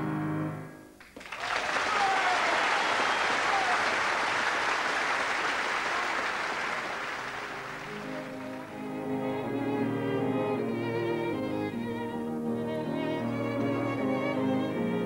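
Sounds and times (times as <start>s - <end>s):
audience applause: 1.0s - 9.3s
piano chord: 7.4s - 15.0s.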